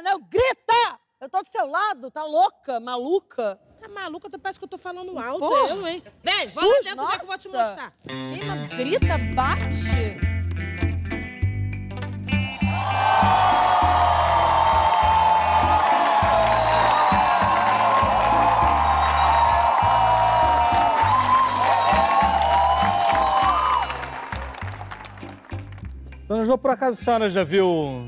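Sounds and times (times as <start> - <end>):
music with steady bass line: 8.1 - 26.4
audience applauding and cheering: 12.5 - 25.9.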